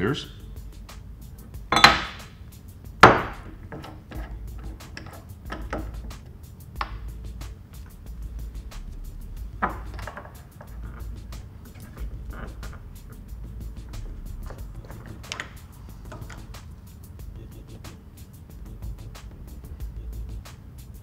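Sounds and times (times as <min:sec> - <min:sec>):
quiet background music: 0:00.0 - 0:21.0
glassware knocking on a bench: 0:01.7 - 0:02.2, 0:09.6 - 0:10.7.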